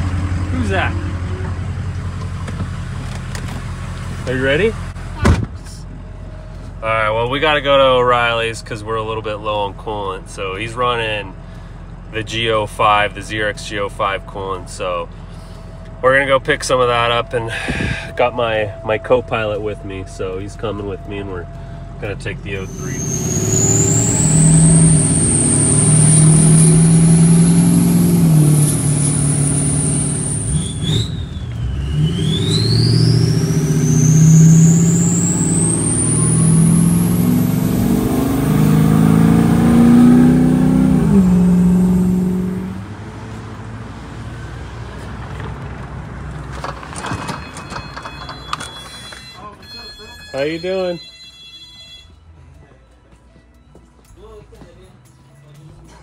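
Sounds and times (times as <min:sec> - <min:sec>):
diesel engine accelerating: 0:00.0 - 0:05.2, 0:05.8 - 0:47.2
turbo whistle: 0:22.6 - 0:27.4, 0:29.1 - 0:37.4.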